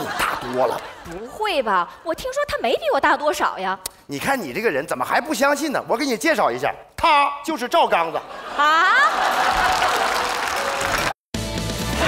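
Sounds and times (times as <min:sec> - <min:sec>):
audience applause: 0:08.9 - 0:11.2
theme music with steady beat: 0:11.4 - 0:12.0.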